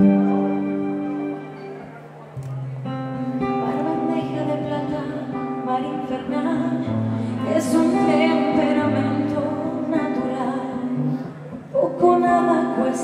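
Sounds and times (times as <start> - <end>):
acoustic guitar ballad: 0.0 - 13.0.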